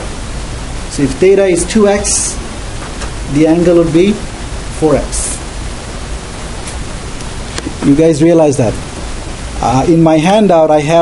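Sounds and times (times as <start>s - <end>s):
steady background hiss: 0.0s - 11.0s
man's voice: 1.0s - 2.4s, 7.8s - 8.8s, 9.6s - 11.0s.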